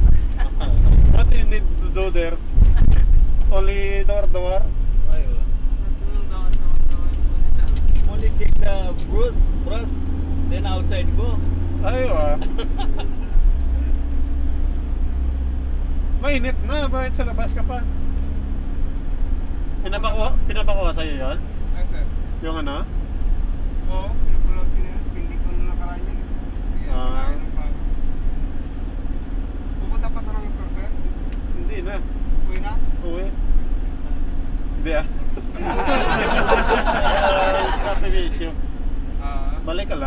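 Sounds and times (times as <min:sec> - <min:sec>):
road noise: 0:00.0 - 0:40.0
van engine rumble: 0:00.0 - 0:40.0
voices: 0:29.7 - 0:38.6
man speaking: 0:37.0 - 0:38.6.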